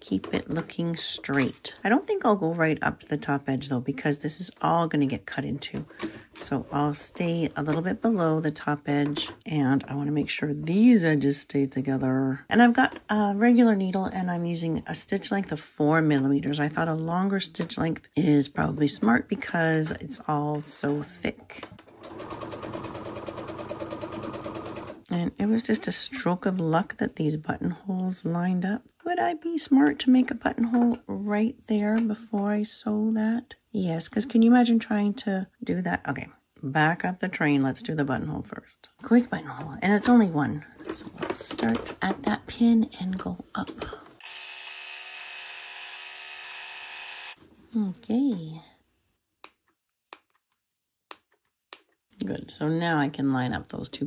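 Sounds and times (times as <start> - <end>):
sewing machine stitching: 21.7 - 25.1.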